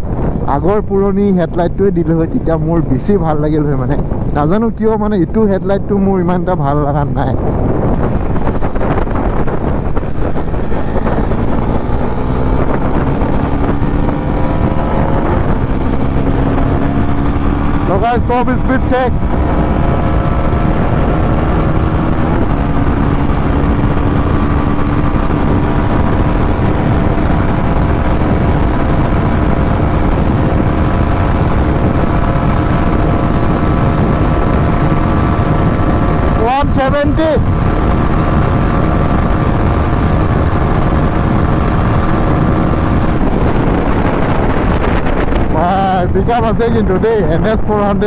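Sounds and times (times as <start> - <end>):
wind rush on microphone: 0.0 - 48.0
motorcycle engine at high revs: 7.1 - 48.0.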